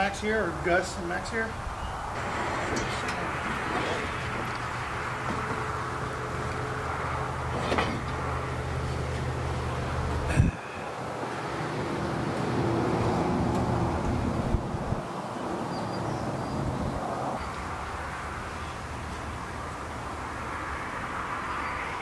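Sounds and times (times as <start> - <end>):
low mechanical hum: 1.5 - 15.1
rushing noise: 1.6 - 15.2.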